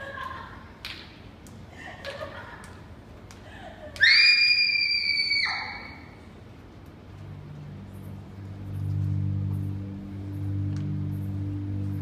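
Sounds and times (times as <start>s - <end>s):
high-pitched scream: 4.0s - 6.2s.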